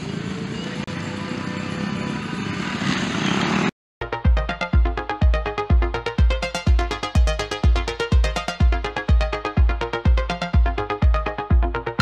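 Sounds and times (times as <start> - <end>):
electronic music with kick drum: 4.0 - 12.0.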